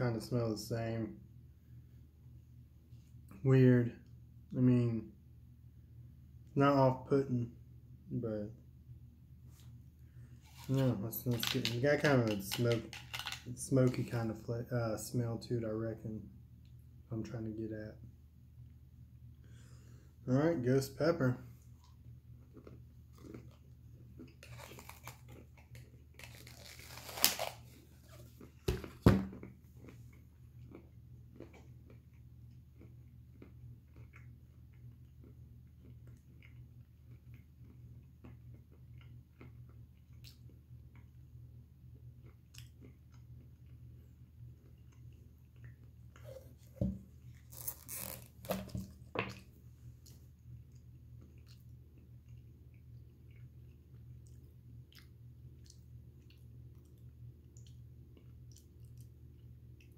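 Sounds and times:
man crunching peanuts: 10.5s - 13.6s, 22.5s - 27.8s.

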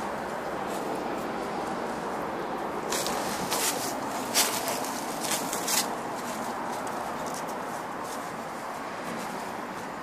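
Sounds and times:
footsteps on dry leaves: 2.8s - 10.0s.

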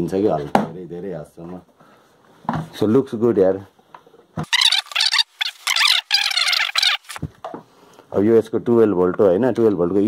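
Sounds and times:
plastic squeaking and scraping: 4.4s - 7.3s.

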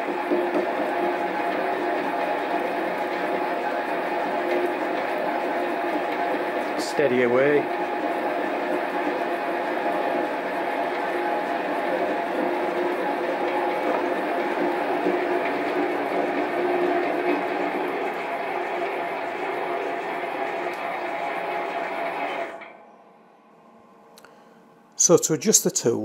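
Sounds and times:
metal lathe cutting: 0.0s - 22.6s.

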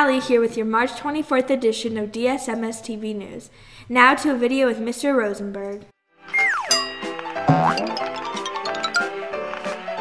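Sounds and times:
cartoonish transition jingle: 7.5s - 8.9s.

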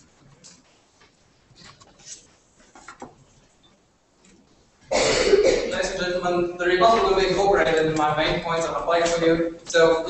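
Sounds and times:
man clearing his throat: 4.9s - 6.0s
man speaking: 5.6s - 10.0s.

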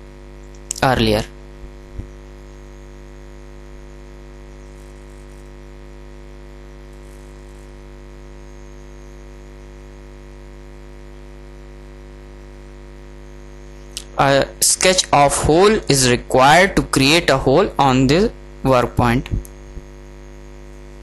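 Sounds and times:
electrical mains hum: 0.0s - 21.0s.

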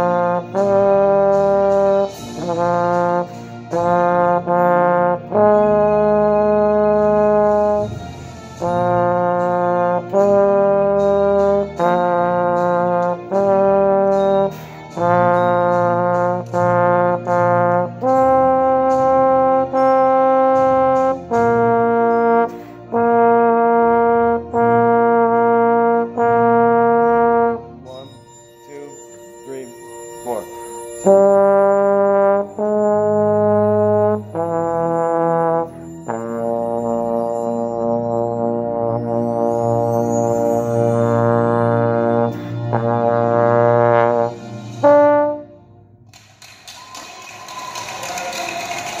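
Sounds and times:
trombone sustained notes: 0.0s - 46.0s.

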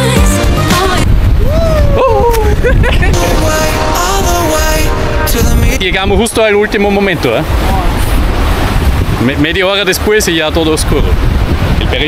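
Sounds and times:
wind buffeting microphone: 0.8s - 12.0s
person exclaiming: 1.4s - 2.9s
person calling: 1.4s - 5.9s.

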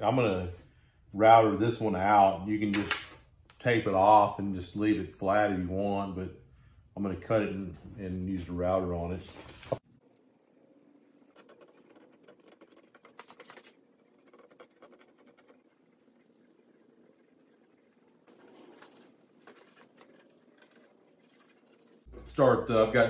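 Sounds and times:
brush scratching on wood: 11.2s - 22.1s.

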